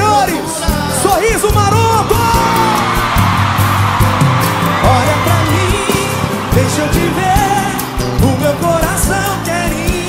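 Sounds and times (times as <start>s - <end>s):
live band playing: 0.0s - 10.0s
crowd cheering: 1.5s - 9.7s
person singing melody: 4.7s - 10.0s.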